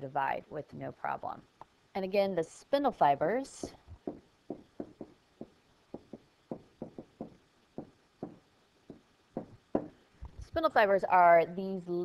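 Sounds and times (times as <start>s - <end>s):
stylus tapping on screen: 3.6s - 10.6s.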